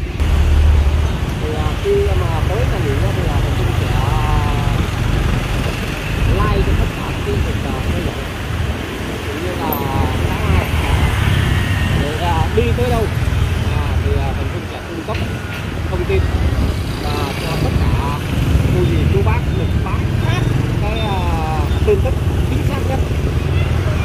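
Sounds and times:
road engine and wind rumble: 0:00.0 - 0:24.0.

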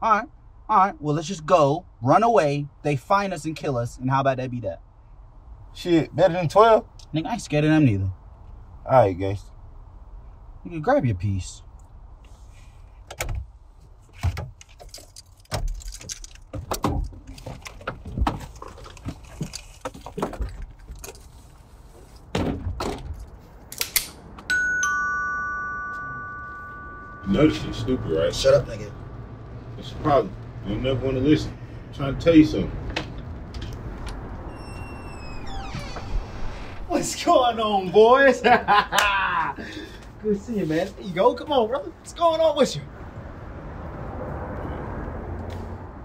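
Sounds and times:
low steady hum: 0:24.4 - 0:39.0
squeaky door hinge: 0:34.5 - 0:36.9.

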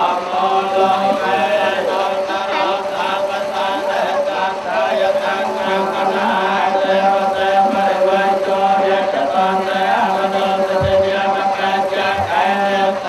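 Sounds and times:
monks chanting in unison: 0:00.0 - 0:13.0.

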